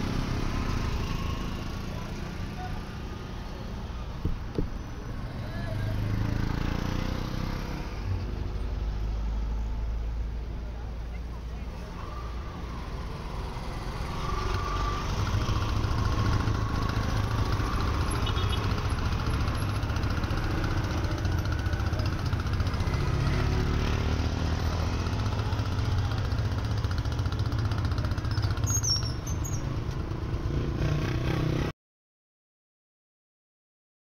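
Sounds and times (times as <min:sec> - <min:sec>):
traffic engine rumble: 0:00.0 - 0:31.7
small three-wheeler engine running: 0:12.0 - 0:29.6.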